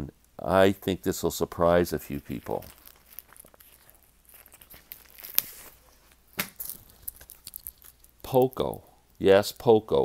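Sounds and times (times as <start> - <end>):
plastic sleeve crinkling: 1.1 - 8.9.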